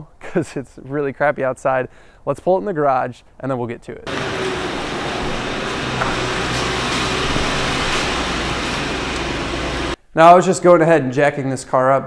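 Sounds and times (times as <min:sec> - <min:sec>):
car engine humming: 0:04.1 - 0:10.0.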